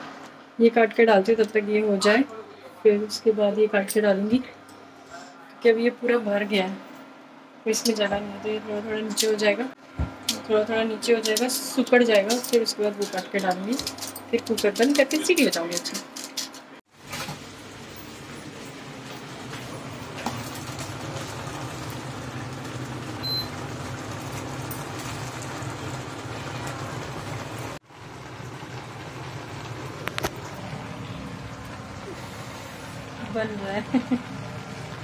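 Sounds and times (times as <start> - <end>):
low hum with hiss: 0.0 - 35.0.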